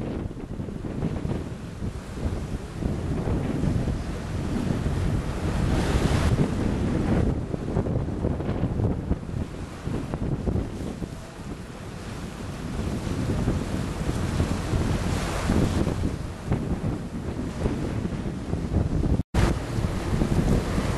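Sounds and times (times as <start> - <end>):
water noise: 0.0 - 20.9
wind buffeting microphone: 0.0 - 20.9.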